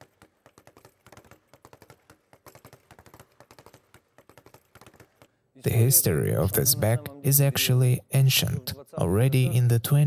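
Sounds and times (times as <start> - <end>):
speed bag knocking on rebound platform: 0.0 - 5.3.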